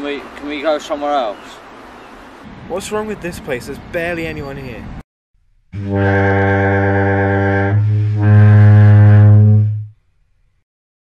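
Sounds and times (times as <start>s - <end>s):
loud low droning note: 5.7s - 10.0s.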